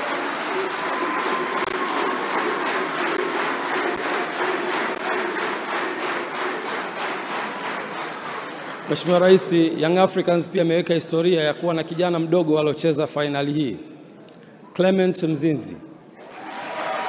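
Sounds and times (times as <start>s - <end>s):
audience applauding: 0.0s - 9.7s, 16.2s - 17.0s.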